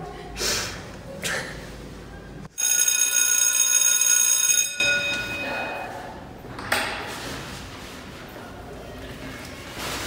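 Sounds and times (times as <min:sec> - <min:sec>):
bell ringing: 0:02.6 - 0:06.0.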